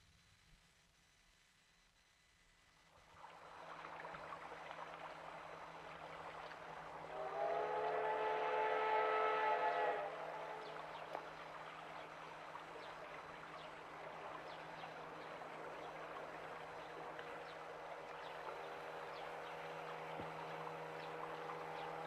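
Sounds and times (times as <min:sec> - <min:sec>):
train running: 0:05.1 - 0:22.0
steam whistle blast: 0:07.1 - 0:11.0.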